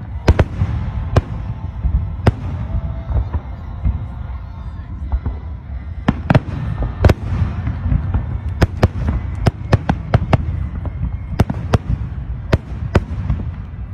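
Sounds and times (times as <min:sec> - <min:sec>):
fireworks bangs: 0:00.0 - 0:13.9.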